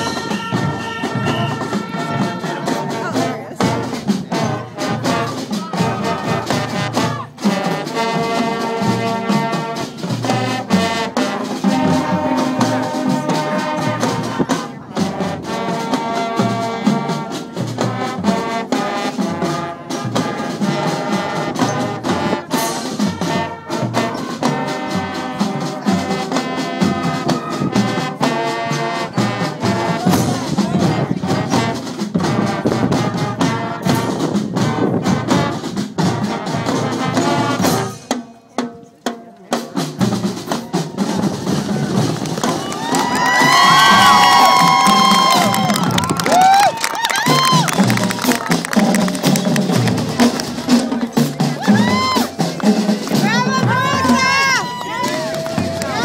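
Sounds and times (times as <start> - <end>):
marching band brass and drums: 0.0 - 56.0
crowd cheering and whoops: 42.4 - 49.5, 51.6 - 52.4, 53.7 - 56.0.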